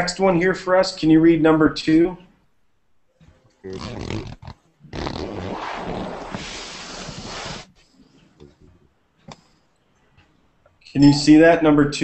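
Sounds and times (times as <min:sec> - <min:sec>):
faint voice: 0:03.7 - 0:04.2
microphone noise rushing hiss: 0:05.0 - 0:07.8.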